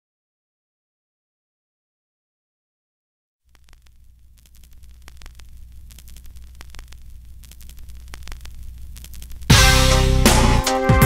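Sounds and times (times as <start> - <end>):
crackling clicks: 3.5 - 9.6
steady low hum: 3.5 - 10.1.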